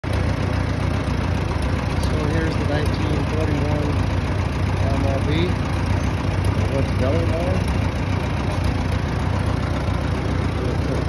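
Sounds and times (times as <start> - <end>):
tractor engine idling: 0.0 - 11.0.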